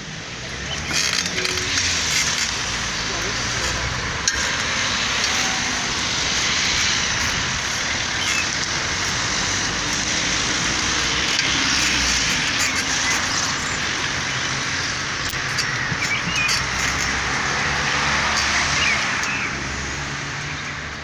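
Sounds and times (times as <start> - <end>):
road traffic: 0.0 - 21.0.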